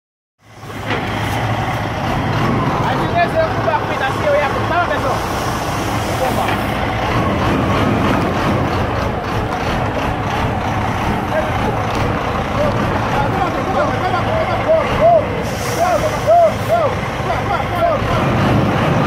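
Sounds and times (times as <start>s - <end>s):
diesel truck engine idling: 0.4s - 19.0s.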